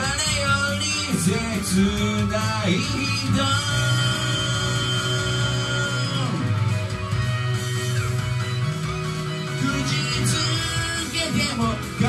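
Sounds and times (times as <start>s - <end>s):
rock backing track with guitar: 0.0s - 12.0s.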